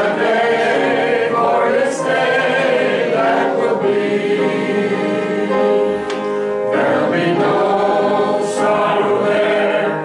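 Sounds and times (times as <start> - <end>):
church choir singing a hymn: 0.0 - 10.0.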